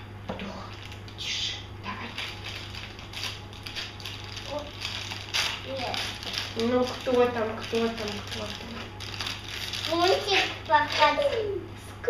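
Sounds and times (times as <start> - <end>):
steady low hum: 0.0 - 12.0
plastic wrapper crackling: 2.0 - 11.5.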